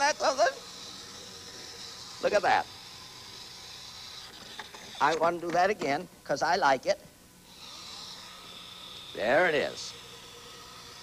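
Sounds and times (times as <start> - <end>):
wind-up toy motor whirring: 0.0 - 5.5, 7.4 - 11.0.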